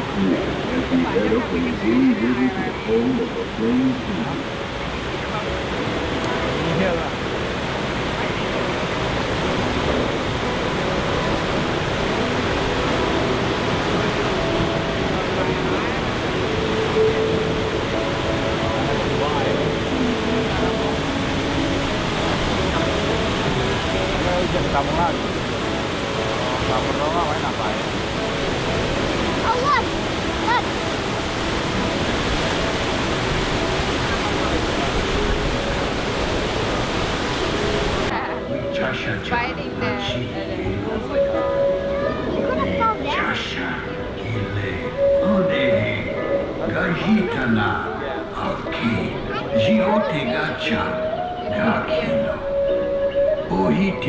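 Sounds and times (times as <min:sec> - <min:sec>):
faint voices: 0:00.0 - 0:37.2, 0:38.0 - 0:54.0
water rushing: 0:00.0 - 0:54.0.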